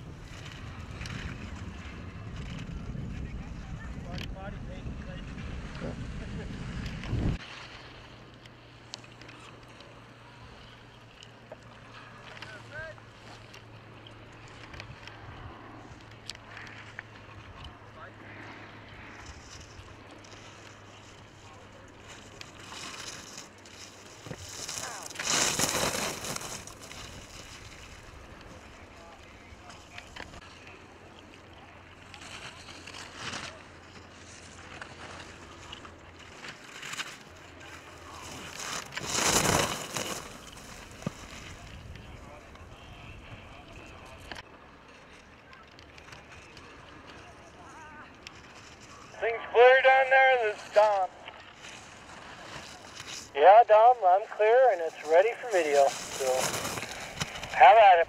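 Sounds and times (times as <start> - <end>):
wind noise on microphone: 0.0 - 7.4
skis scraping on hard snow: 19.1 - 30.7, 32.0 - 45.2, 45.8 - 58.0.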